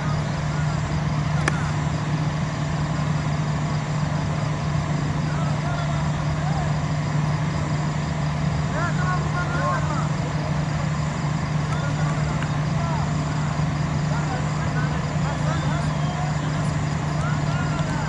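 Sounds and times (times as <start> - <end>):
distant voices calling out: 0.0 - 18.0
steady low hum: 0.0 - 18.0.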